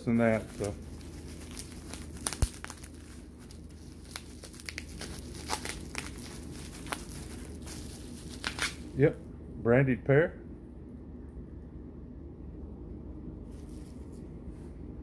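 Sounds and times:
bubble wrap crinkling and crackling: 0.0s - 9.1s.

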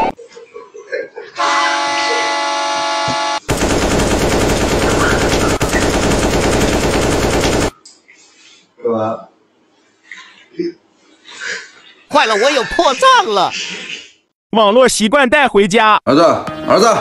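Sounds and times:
held horn-like tone: 1.4s - 3.5s
rapid machine-gun fire: 3.5s - 7.7s.

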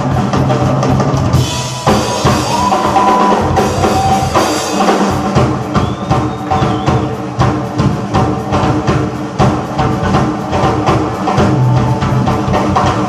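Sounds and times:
live band music: 0.0s - 13.0s
rapid drum and cymbal hits: 0.0s - 13.0s.

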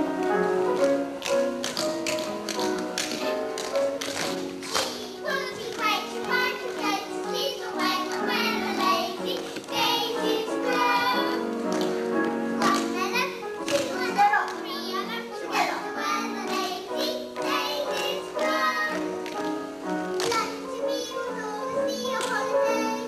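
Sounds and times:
song with singing voice: 2.6s - 23.0s.

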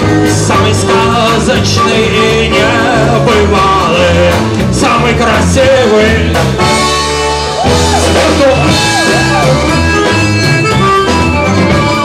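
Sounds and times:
live band with drum kit: 0.0s - 12.0s
button accordion melody: 6.6s - 12.0s.

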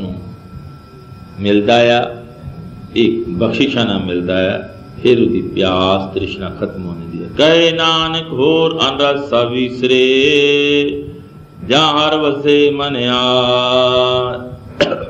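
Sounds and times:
man chanting melodically: 0.0s - 0.5s, 1.4s - 15.0s.

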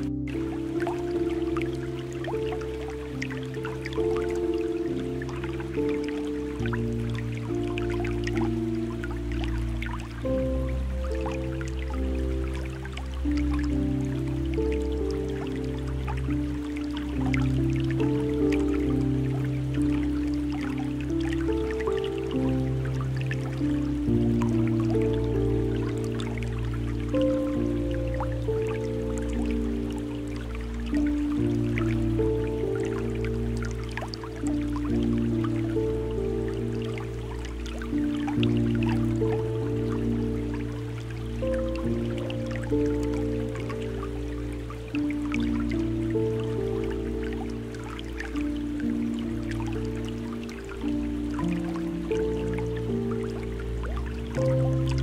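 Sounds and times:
calm ambient music: 0.0s - 55.0s
water drips and splashes: 0.0s - 55.0s.

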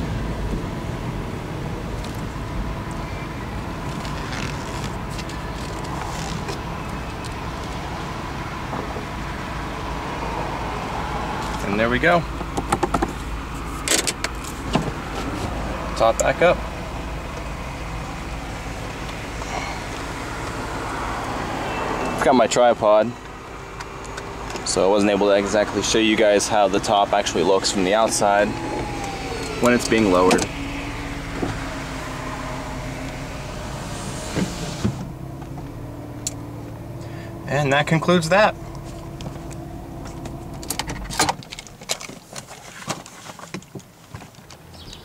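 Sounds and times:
car engine idling: 0.0s - 42.4s
convertible top whirring: 0.2s - 22.2s, 23.2s - 42.8s
roof clunks: 11.4s - 16.5s, 23.2s - 37.2s.

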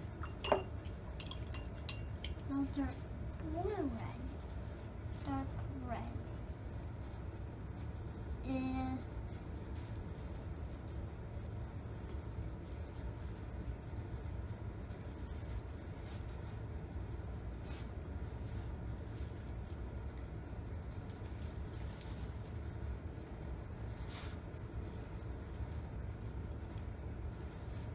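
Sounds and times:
steady low hum: 0.0s - 27.9s.

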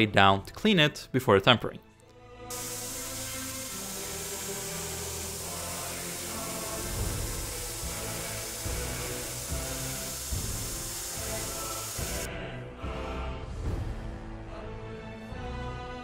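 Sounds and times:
belt grinder hissing: 2.5s - 12.3s.

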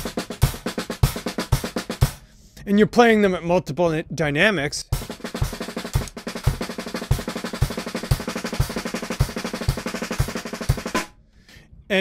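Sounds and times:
snare drum rudimental pattern: 0.0s - 2.3s, 4.9s - 11.1s.

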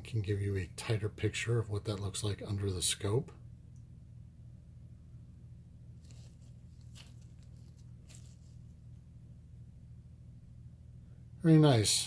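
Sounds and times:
steady low hum: 0.0s - 12.0s
nitrile gloves crinkling: 5.9s - 9.0s.

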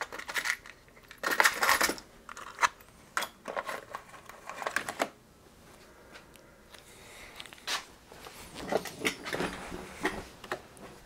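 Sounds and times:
small parts rattling in container: 0.0s - 2.7s.

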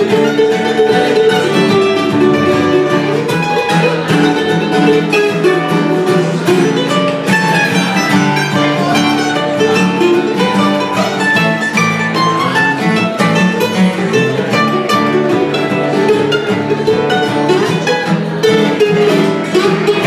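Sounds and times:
acoustic guitar strumming: 0.0s - 20.0s
mandolin picking: 0.0s - 20.0s.

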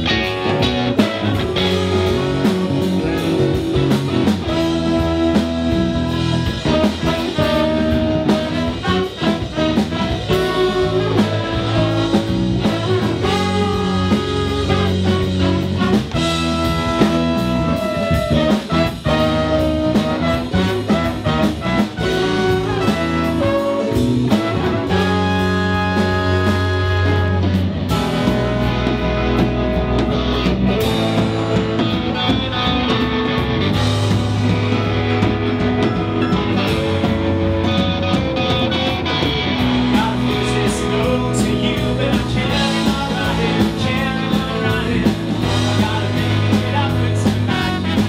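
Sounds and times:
bass and drums: 0.0s - 48.0s
electric guitar: 0.0s - 48.0s
horn section with trombone: 0.0s - 48.0s.

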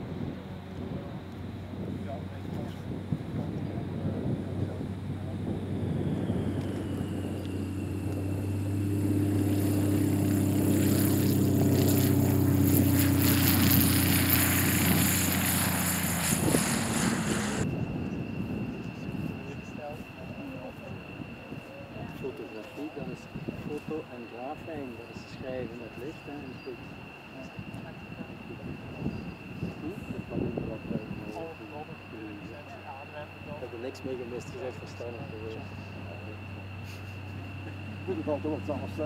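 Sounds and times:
plane engine and propeller: 0.0s - 39.0s.

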